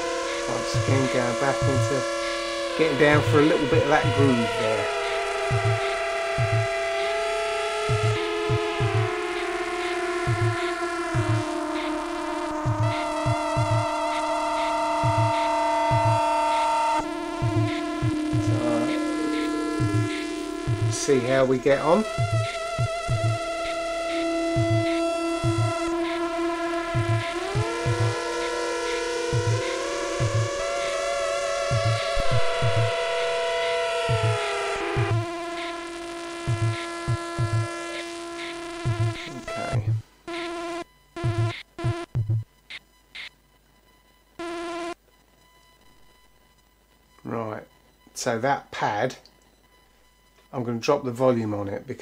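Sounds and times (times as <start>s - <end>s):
synth drones with sliding pitch: 0.0s - 38.0s
choppy synth bursts: 0.0s - 42.4s
low thumps: 0.6s - 2.0s, 2.9s - 7.0s, 7.8s - 9.5s, 10.2s - 11.9s, 12.5s - 16.6s, 17.3s - 37.9s, 38.7s - 40.0s, 41.2s - 42.5s.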